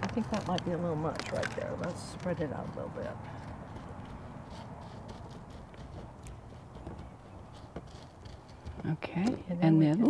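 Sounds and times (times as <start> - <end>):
pebbles clicking: 0.0 - 8.8.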